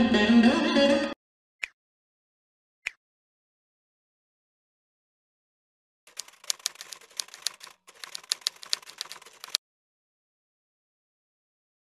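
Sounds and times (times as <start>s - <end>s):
keystroke clicks: 6.1s - 9.6s.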